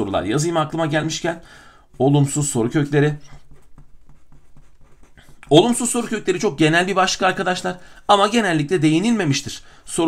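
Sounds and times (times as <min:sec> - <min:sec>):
felt-tip pen writing on paper: 0:03.3 - 0:05.3.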